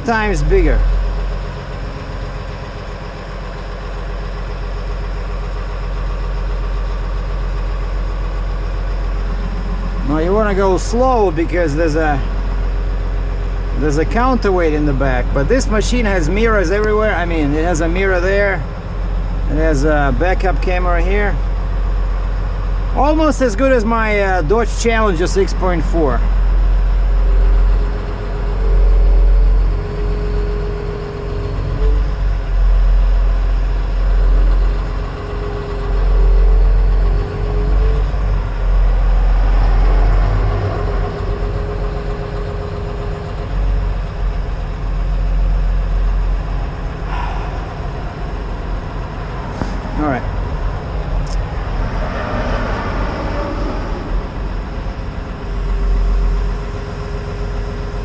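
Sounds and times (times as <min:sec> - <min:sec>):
diesel engine running: 0:00.0 - 0:58.0
hydraulic whine: 0:00.0 - 0:58.0.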